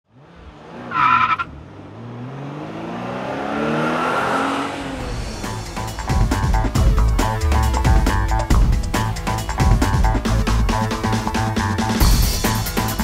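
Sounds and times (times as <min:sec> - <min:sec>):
tire screech: 0:00.1 - 0:05.2
car engine revving: 0:00.1 - 0:08.4
music: 0:05.0 - 0:13.0.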